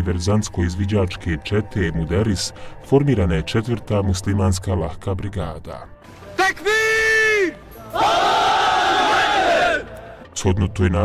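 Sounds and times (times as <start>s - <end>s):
many voices shouting in unison: 7.8s - 10.2s.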